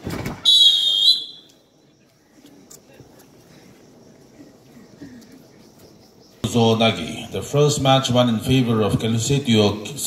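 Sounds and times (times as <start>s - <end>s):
referee's whistle blast: 0.4s - 1.5s.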